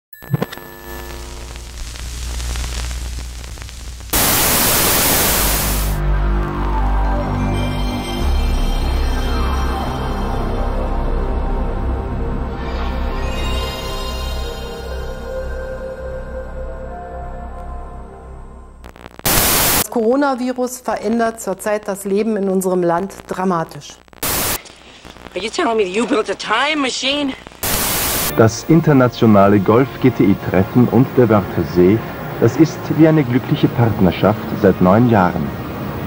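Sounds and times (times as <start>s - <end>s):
faint crackle: 0.2s - 6.0s, 18.8s - 19.9s, 22.0s - 28.4s
television static hiss: 0.3s - 6.0s, 18.8s - 36.0s
woman speaking: 19.8s - 24.0s, 25.3s - 27.4s.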